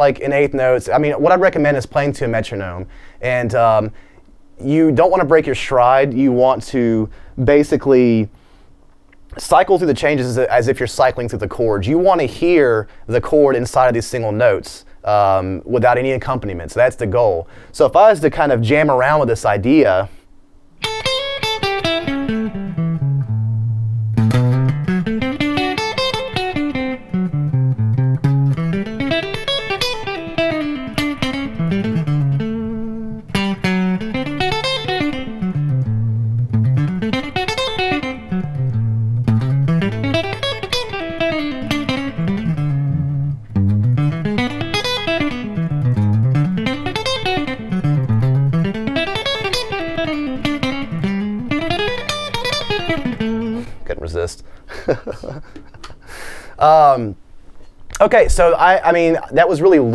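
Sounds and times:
electric guitar arpeggio runs: 20.8s - 53.7s.

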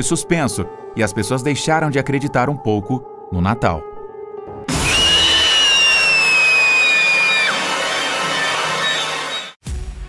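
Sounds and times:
faint background music: 0.0s - 4.4s
loud noisy crash: 4.7s - 6.5s
high thin shriek falling in pitch: 4.7s - 9.6s.

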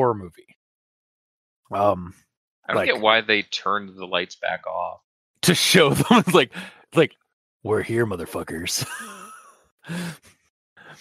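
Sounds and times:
man laughing: 2.7s - 3.4s, 5.6s - 6.7s, 8.6s - 10.2s
faint breath: 6.5s - 6.8s, 9.9s - 11.0s
short sigh: 6.5s - 6.8s, 9.9s - 11.0s.

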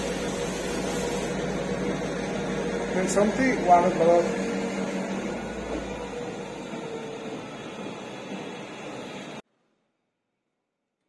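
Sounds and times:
person speaking: 2.9s - 4.5s.

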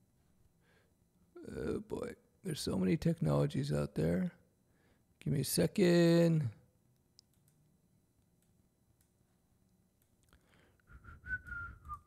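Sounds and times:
man whistling softly: 10.9s - 12.0s.

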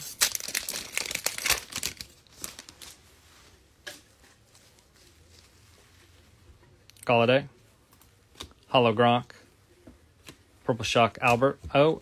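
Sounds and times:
foil wrapper tearing and crinkling: 0.0s - 3.0s.

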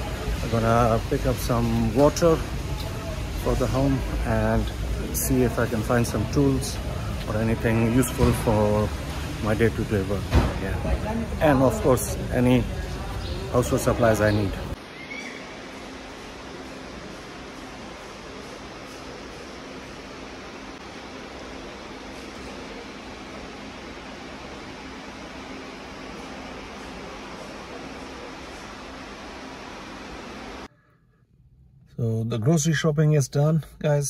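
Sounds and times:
supermarket background noise: 0.0s - 30.6s.

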